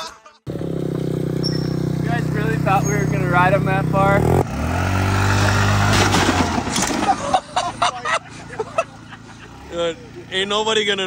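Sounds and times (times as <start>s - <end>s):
scooter engine running: 0.5s - 11.0s.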